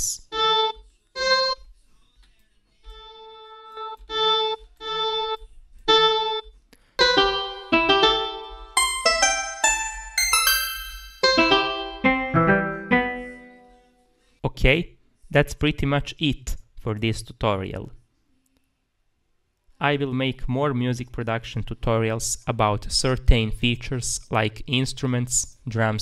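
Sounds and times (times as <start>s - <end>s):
sampled plucked notes: 0.3s - 1.6s, 3.0s - 6.4s, 7.0s - 13.8s.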